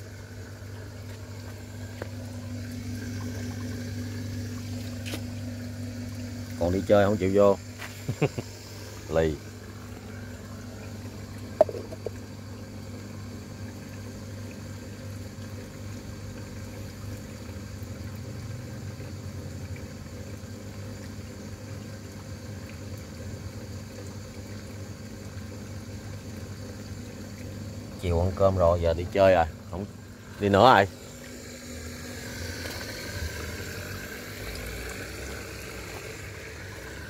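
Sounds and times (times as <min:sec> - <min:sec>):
water pump humming: 0:00.0 - 0:37.0.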